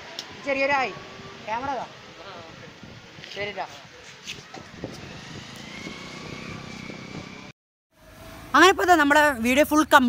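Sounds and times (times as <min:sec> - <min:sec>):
small motorcycle engine passing: 0:04.5 - 0:09.6.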